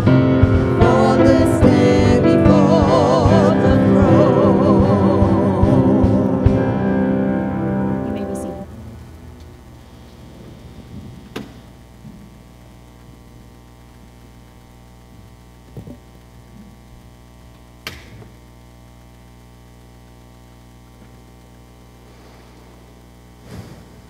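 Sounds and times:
electrical mains hum: 0:00.0 - 0:24.0.

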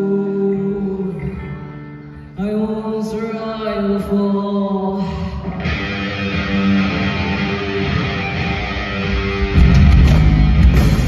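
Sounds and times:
electric guitar riff: 0:05.0 - 0:11.0
bass guitar: 0:05.5 - 0:11.0
rock band playing: 0:05.6 - 0:11.0.

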